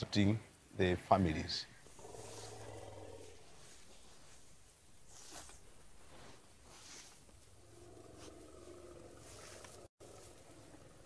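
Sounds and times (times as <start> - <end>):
elephant rumbling: 1.8 - 4.5, 6.0 - 11.0.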